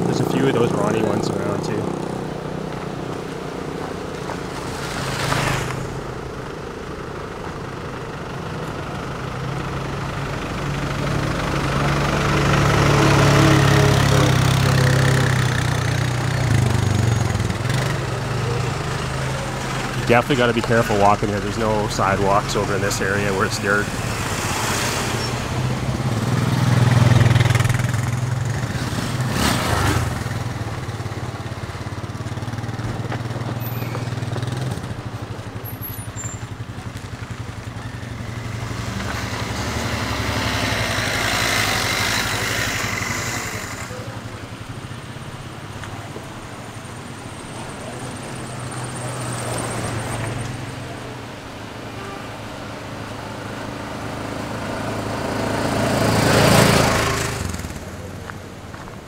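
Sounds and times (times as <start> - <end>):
vehicles driving past on dirt road: 0.0 - 59.0.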